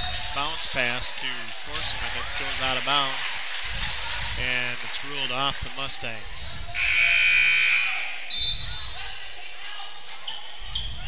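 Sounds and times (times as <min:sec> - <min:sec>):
echoing gym hubbub: 0:00.0 - 0:11.0
gymnasium buzzer: 0:06.8 - 0:08.8.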